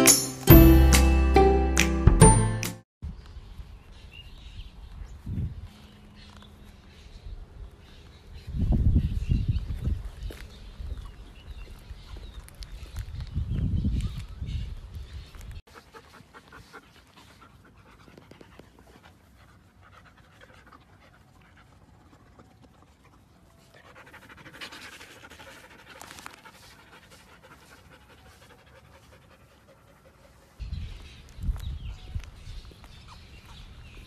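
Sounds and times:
dog panting: 0:15.7 - 0:30.6.

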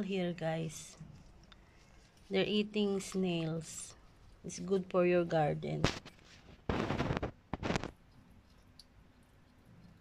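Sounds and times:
hedgehog crunching snails: 0:00.0 - 0:10.0.

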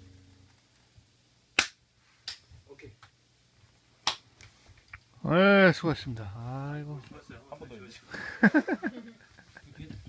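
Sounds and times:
band holding a chord: 0:00.0 - 0:00.6.

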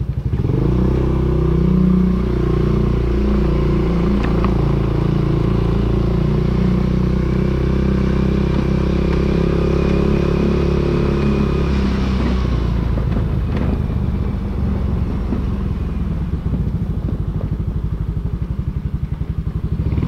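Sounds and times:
small motorcycle engine running: 0:00.0 - 0:20.0.

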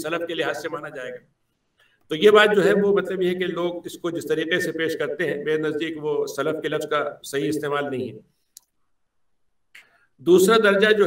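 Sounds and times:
man speaking: 0:00.0 - 0:01.2, 0:02.1 - 0:08.3, 0:10.2 - 0:11.0.

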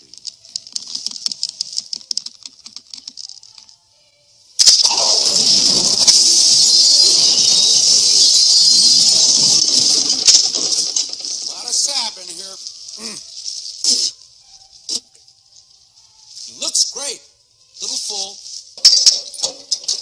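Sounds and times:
loud crash: 0:04.6 - 0:11.8
tree branches rustling: 0:09.3 - 0:17.1, 0:17.7 - 0:18.8.

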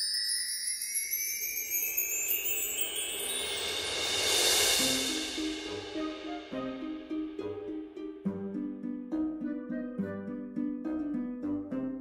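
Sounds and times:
twinkling chimes rising in pitch: 0:00.0 - 0:11.5
hiss: 0:03.4 - 0:06.4.

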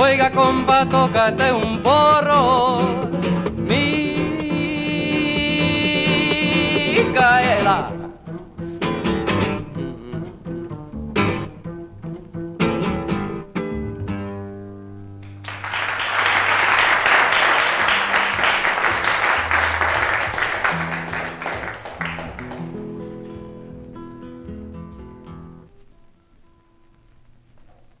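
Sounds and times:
acoustic guitar strumming: 0:00.0 - 0:15.7, 0:16.5 - 0:27.5
audience applause: 0:15.2 - 0:23.0.

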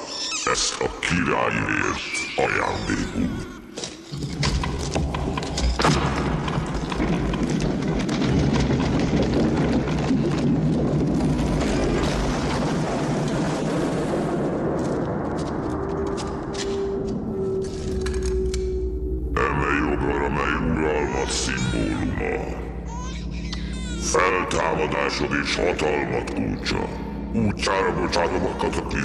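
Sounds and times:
crashing and booming effects: 0:05.8 - 0:16.5
film music: 0:14.3 - 0:29.0.

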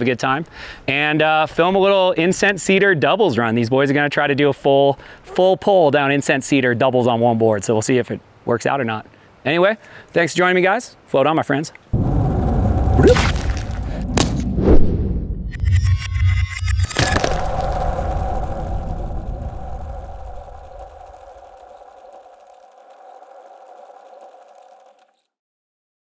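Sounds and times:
low rumble: 0:12.0 - 0:25.0
whooshes: 0:12.0 - 0:25.2.

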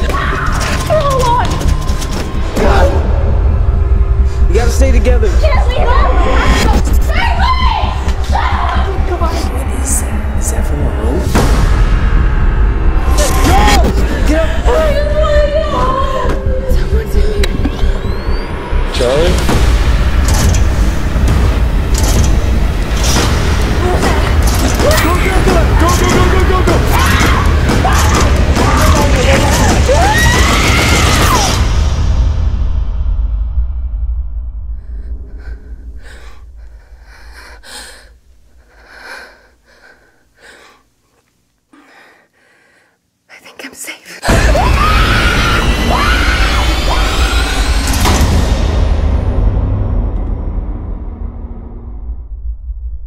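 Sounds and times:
low rumbling drone: 0:02.6 - 0:30.0
woman breathing frightened: 0:34.7 - 0:40.9, 0:41.7 - 0:43.1.

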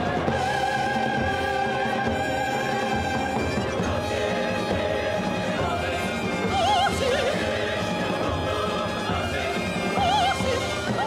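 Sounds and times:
soprano singing with vibrato: 0:00.0 - 0:11.0
symphony orchestra: 0:00.0 - 0:11.0.

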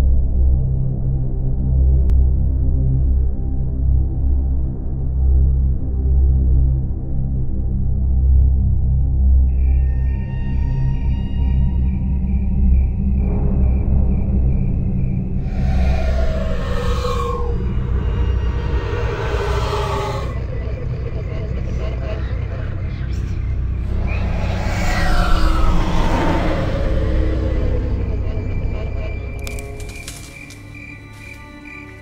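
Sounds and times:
low rumbling drone: 0:00.0 - 0:32.0.

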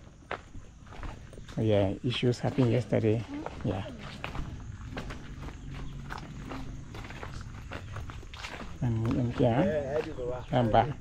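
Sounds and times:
footsteps on gravel path: 0:00.0 - 0:11.0.

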